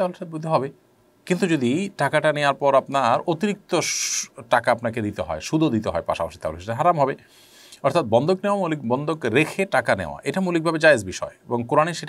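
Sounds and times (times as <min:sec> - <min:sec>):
man lecturing: 0:00.0 - 0:12.0.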